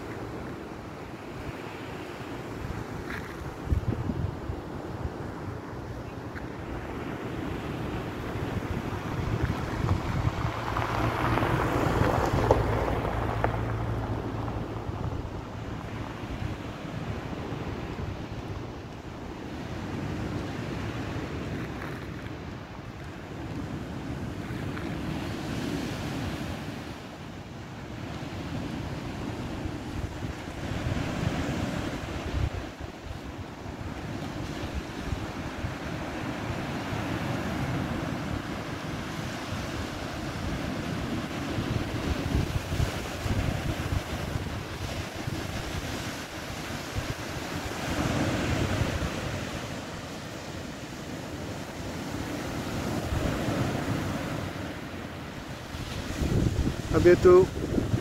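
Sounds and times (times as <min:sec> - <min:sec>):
small waves breaking on beach: 0:00.0 - 0:58.0
wind buffeting microphone: 0:00.0 - 0:58.0.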